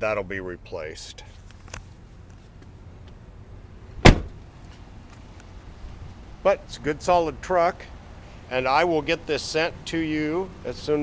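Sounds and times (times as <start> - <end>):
truck door slamming: 4.0 - 4.4.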